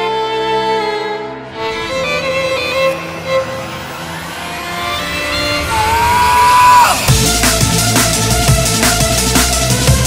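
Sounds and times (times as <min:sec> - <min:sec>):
background music: 0:00.0 - 0:10.0
car engine revving: 0:01.7 - 0:09.1.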